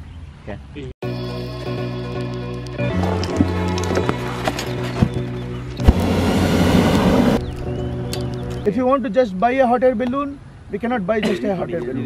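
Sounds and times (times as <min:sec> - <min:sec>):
propane burner blast: 0:05.8 - 0:07.6.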